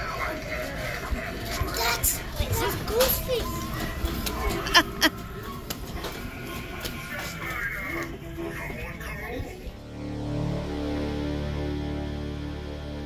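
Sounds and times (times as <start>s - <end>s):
children chattering: 0.0s - 9.8s
voices: 0.0s - 9.9s
music playing in a shop: 0.0s - 13.0s.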